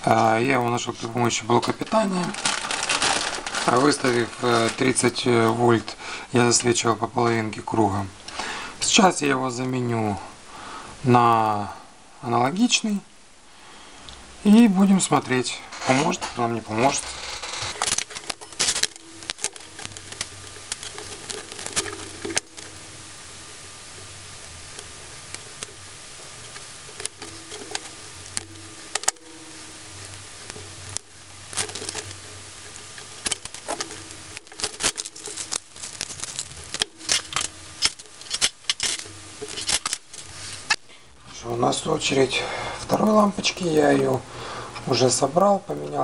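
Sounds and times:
faint low hum: 0.0s - 46.0s.

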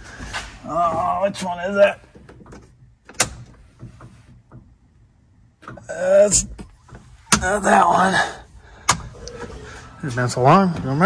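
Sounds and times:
light clicks and knocks: 2.0s - 5.0s.

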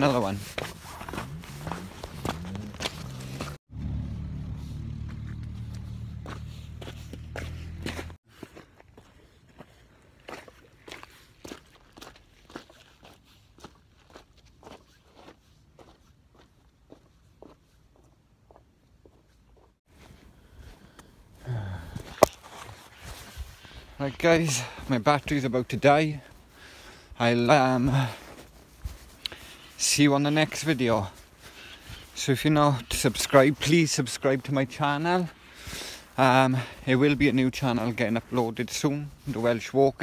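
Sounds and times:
footsteps on stony track: 0.0s - 3.6s, 4.6s - 40.0s.

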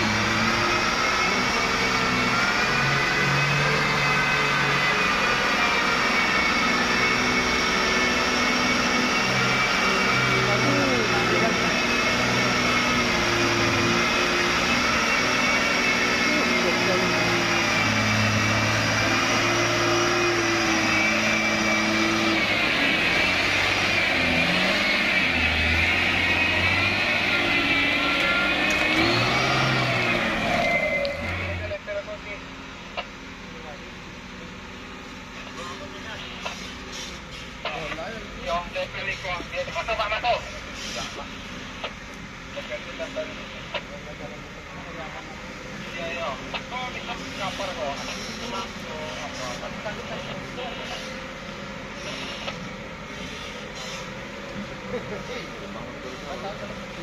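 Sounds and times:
steady high whine: 0.0s - 36.7s
diesel truck engine labouring: 0.0s - 57.0s.

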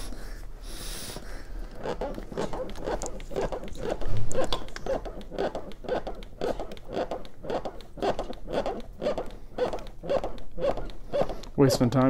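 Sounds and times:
chest compressions on manikin: 0.0s - 12.0s.

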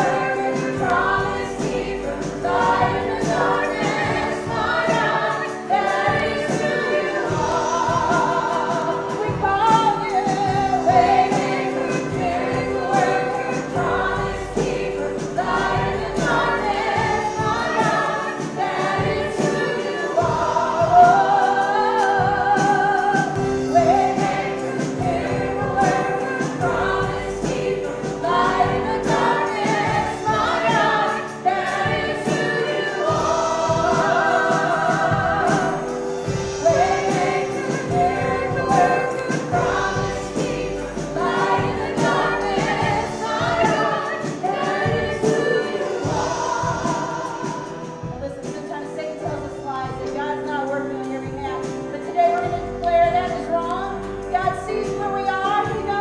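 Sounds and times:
women singing: 0.0s - 56.0s.

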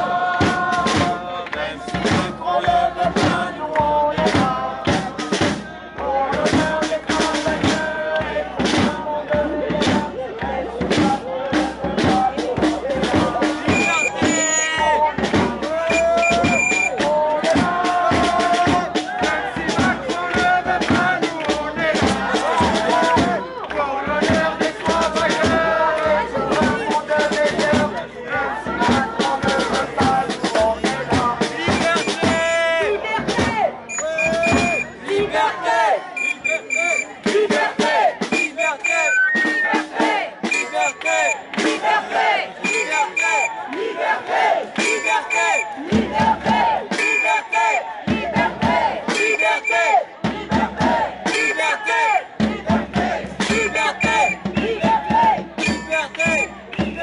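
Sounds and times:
crowd shouting and chanting: 0.0s - 57.0s
rapid drumbeats: 0.0s - 57.0s.

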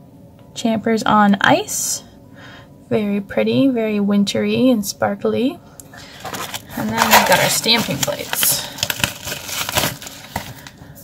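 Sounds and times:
cardboard and paper rustling: 6.0s - 10.8s.

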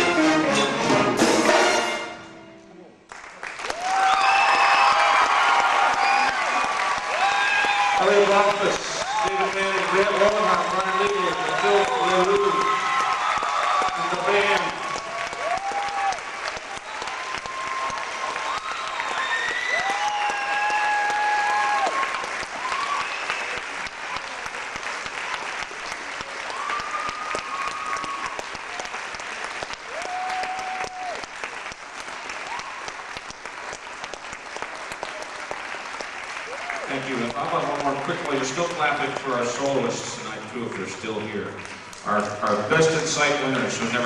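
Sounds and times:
audience applauding: 3.0s - 44.0s
cheers and whoops: 3.6s - 24.5s, 26.2s - 29.1s, 29.7s - 31.5s, 32.3s - 33.2s, 36.4s - 36.9s.

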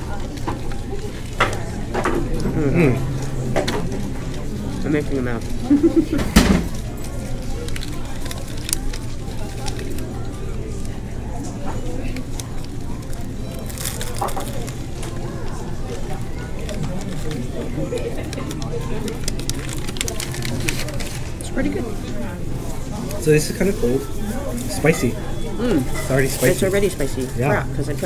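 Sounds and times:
indistinct chatter: 0.0s - 28.0s
paper wrapper crinkling: 6.7s - 11.0s, 12.1s - 22.1s.

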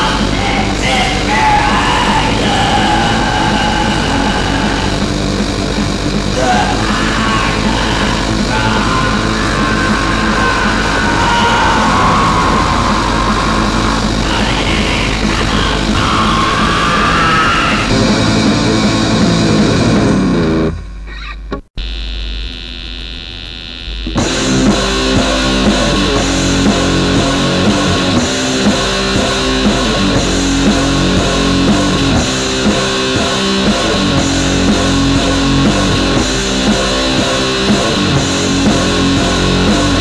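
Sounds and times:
distorted black metal music: 0.0s - 40.0s
electrical buzz and mains hum: 20.1s - 25.6s.

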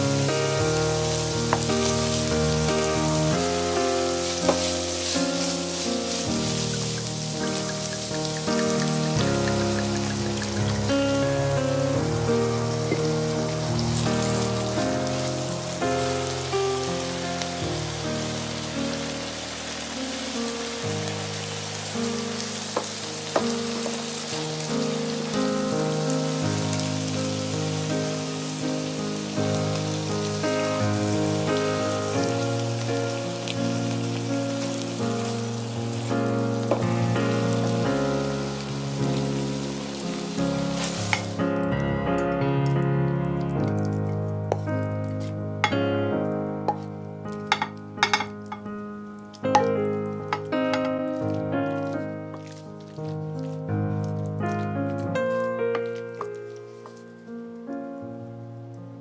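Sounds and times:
meat and vegetables sizzling in pan: 0.0s - 57.4s
instrumental background music: 0.0s - 59.0s
wooden spatula stirring: 4.2s - 11.4s, 49.5s - 57.1s.

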